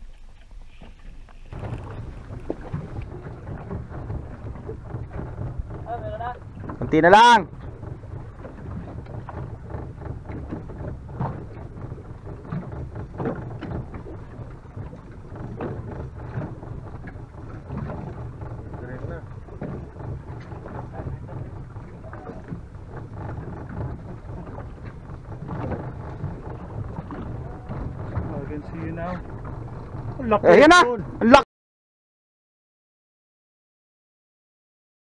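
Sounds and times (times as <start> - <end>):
small boat engine rumble: 0.0 - 31.4
wind on microphone: 0.7 - 31.3
short knocks: 1.5 - 30.2.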